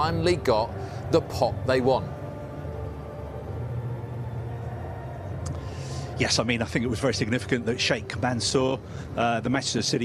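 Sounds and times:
quick breath in: 5.5s - 6.2s.

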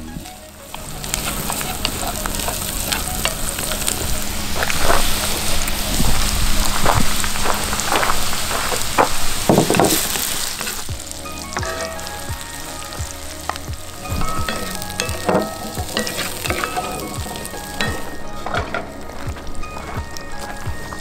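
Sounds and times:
onions sizzling in a skillet: 0.0s - 21.0s.

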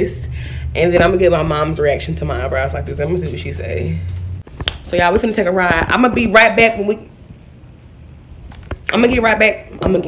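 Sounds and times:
woman speaking: 0.0s - 4.2s, 4.8s - 7.2s, 8.9s - 10.0s.

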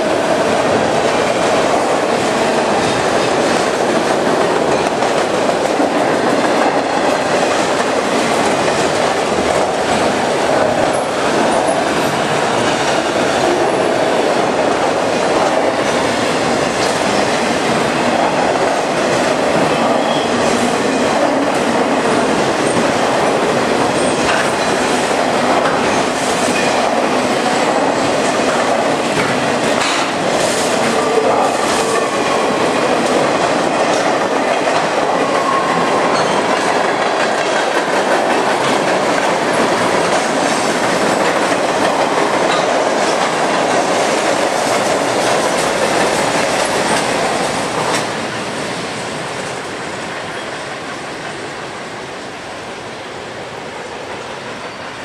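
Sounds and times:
train wheels rumbling over rail joints: 0.0s - 51.5s.

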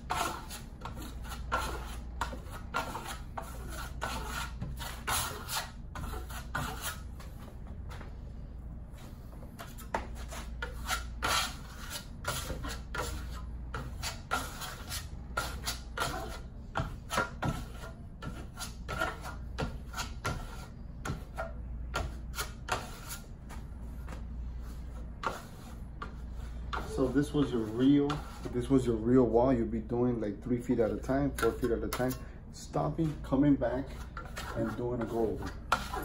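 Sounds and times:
metal trowel scraping wet plaster: 0.0s - 7.0s, 9.6s - 20.7s, 33.8s - 36.0s
steady low hum: 0.0s - 36.0s.

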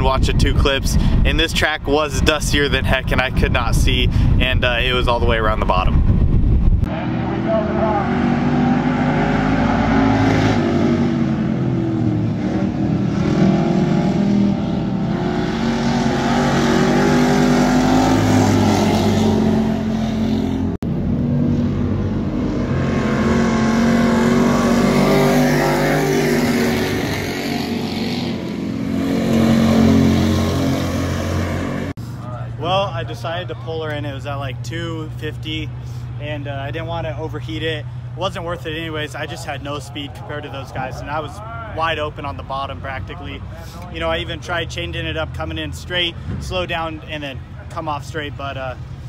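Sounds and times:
race car engines: 6.8s - 49.0s.

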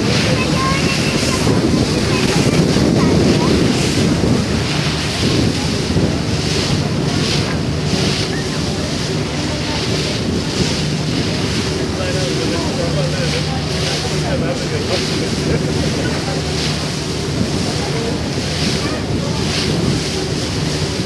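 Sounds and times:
boat wake churning along hull: 0.0s - 21.0s
low engine hum: 0.0s - 21.0s
wind buffeting microphone: 0.0s - 21.0s.

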